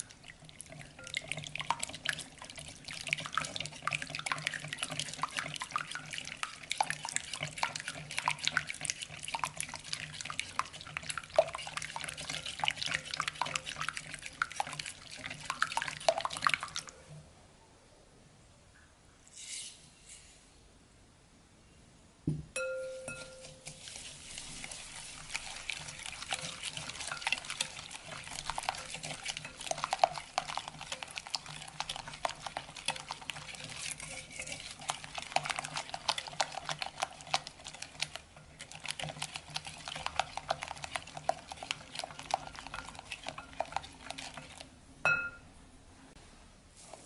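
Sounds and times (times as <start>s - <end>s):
liquid sloshing: 0.0s - 17.1s, 23.1s - 44.8s
whisk clicking against glass bowl: 0.8s - 16.9s, 25.1s - 45.4s.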